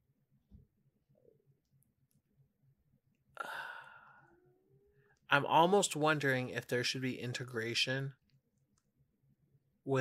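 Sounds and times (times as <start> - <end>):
person sighing: 3.3 - 5.1.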